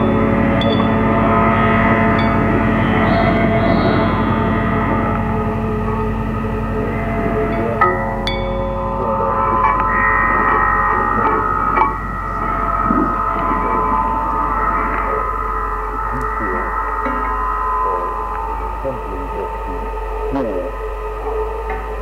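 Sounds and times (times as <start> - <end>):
constant low hum: 0.0 - 22.0
ringing gong-like metallic tones: 0.0 - 22.0.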